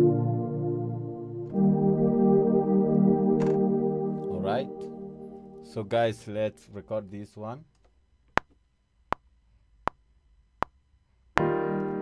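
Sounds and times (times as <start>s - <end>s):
piano playing: 0.0s - 7.0s, 11.4s - 12.0s
sustained keyboard chord: 0.0s - 7.6s, 11.4s - 12.0s.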